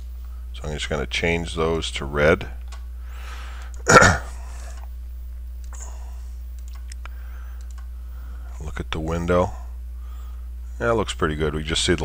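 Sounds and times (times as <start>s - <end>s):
low electrical hum: 0.0s - 12.0s
person coughing: 3.8s - 4.4s
computer mouse clicks: 6.5s - 7.9s.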